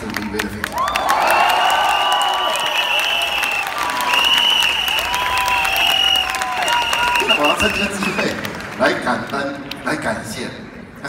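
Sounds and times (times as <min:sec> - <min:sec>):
audience applauding: 0:00.0 - 0:09.8.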